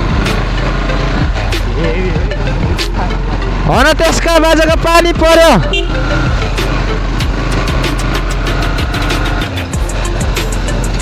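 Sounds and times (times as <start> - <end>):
motorcycle engine running: 0.0 - 11.0
road noise: 0.0 - 11.0.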